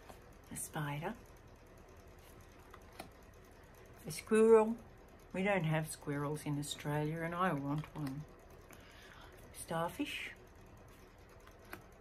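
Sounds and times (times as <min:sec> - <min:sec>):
cards tapping and sliding: 0:02.6 - 0:03.2, 0:11.4 - 0:11.9.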